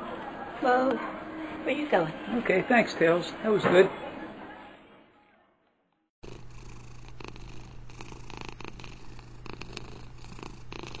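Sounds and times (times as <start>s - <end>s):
cat purring: 6.2s - 11.0s.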